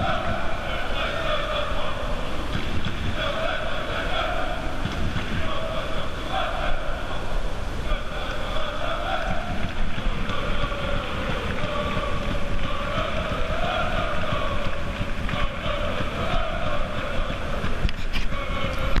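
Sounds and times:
football supporters chanting: 0.0 - 19.0
wind rumble on microphone: 0.0 - 19.0.

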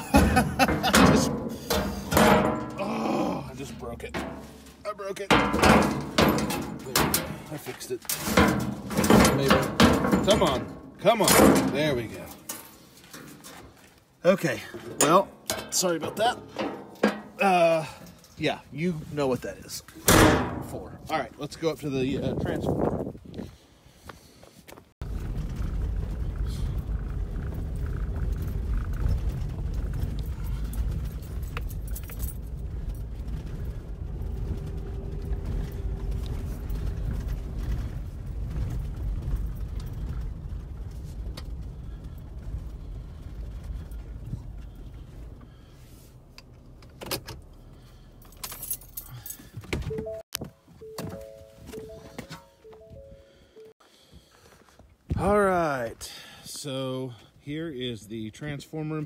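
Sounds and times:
truck rumbling over gravel: 25.0 - 45.8
two-note electronic chime: 50.8 - 53.7.

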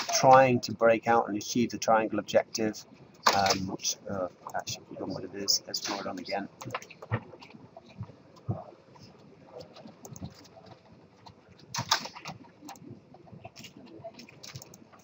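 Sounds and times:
mouse and keyboard clicks: 5.8 - 7.5, 9.6 - 10.5, 13.5 - 15.0.

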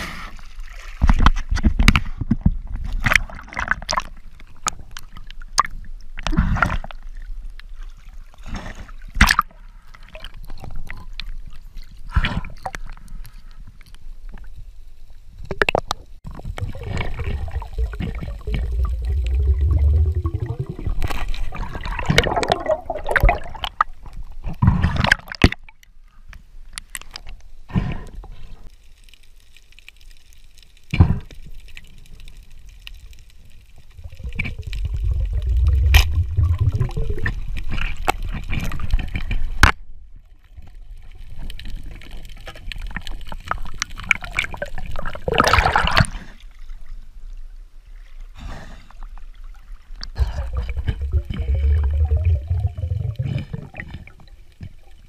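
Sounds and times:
underwater water sloshing: 15.8 - 25.8, 31.6 - 39.7, 47.8 - 55.0.

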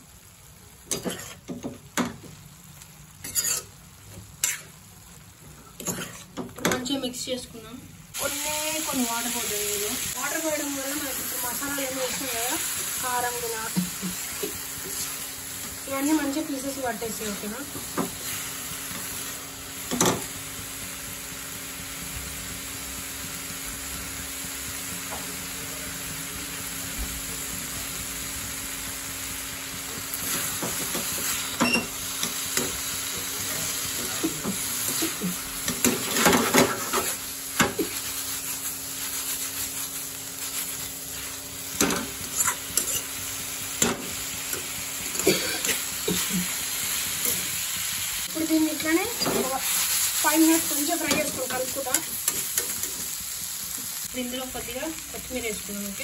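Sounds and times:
chicken sizzling in oil: 0.0 - 56.0
spoon scraping and knocking pan: 3.2 - 3.7, 5.8 - 6.9, 34.1 - 38.1, 41.8 - 43.1.

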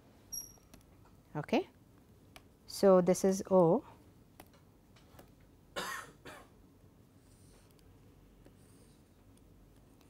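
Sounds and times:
person coughing: 5.8 - 6.5.

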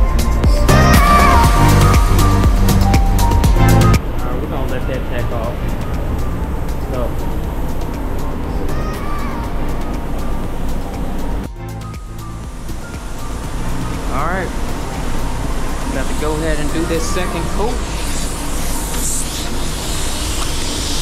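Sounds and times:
ventilation fans rushing air: 0.1 - 21.0.

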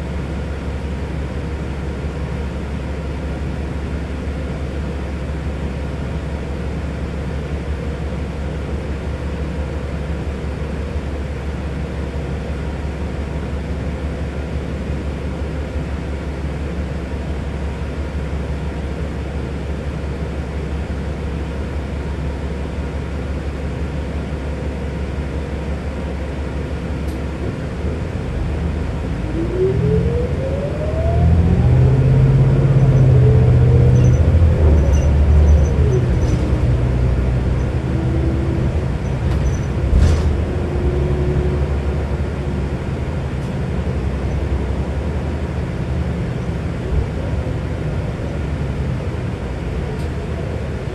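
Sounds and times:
bus accelerating with rising whine: 0.0 - 50.9
bus engine rumble: 0.0 - 50.9.

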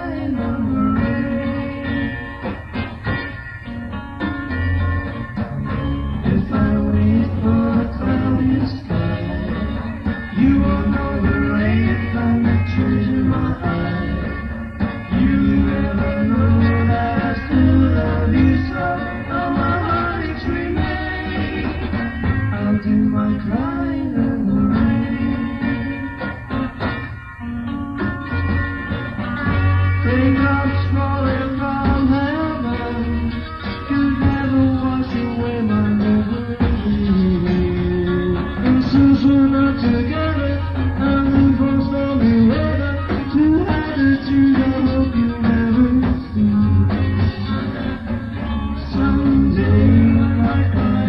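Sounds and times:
beat group playing live: 0.0 - 51.0
electric guitar chords: 0.0 - 51.0
held bass guitar notes: 0.0 - 51.0.

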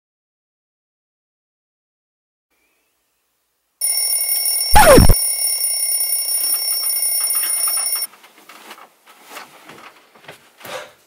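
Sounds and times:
alarm clock bell ringing: 3.8 - 8.1.

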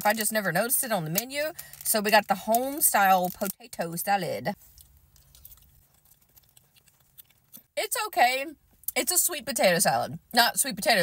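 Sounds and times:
mouth chewing softly: 4.6 - 7.8.

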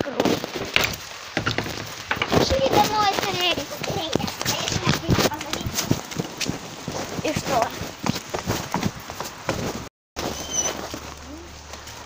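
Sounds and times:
knocks and rustling: 0.1 - 12.0
indistinct voices: 0.8 - 6.2.

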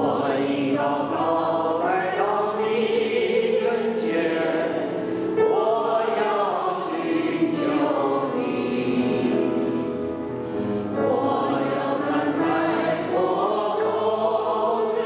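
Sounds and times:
choir singing a worship song: 0.0 - 15.0.

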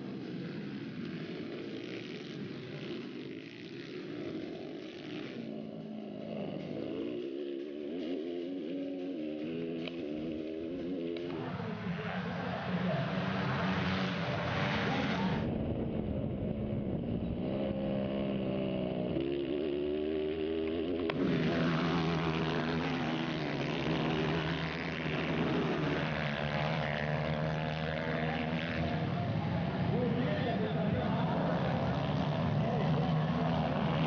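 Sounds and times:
dirt bike engines revving: 0.0 - 34.0.

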